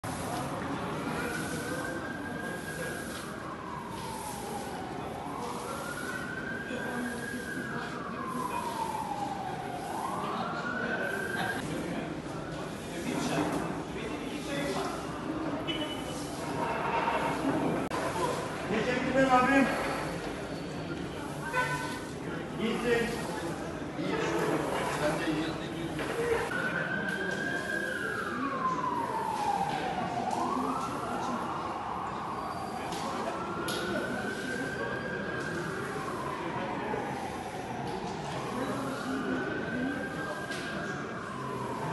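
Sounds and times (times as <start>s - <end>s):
emergency vehicle siren wailing: 0.0s - 41.9s.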